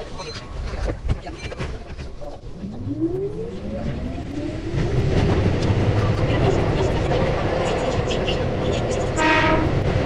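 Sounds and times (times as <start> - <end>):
train running rumble: 0.9 - 10.0.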